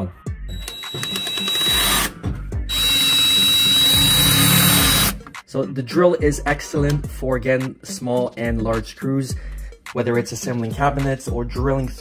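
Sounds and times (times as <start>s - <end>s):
cordless drill driving screws: 0.6s - 2.1s, 2.7s - 5.2s.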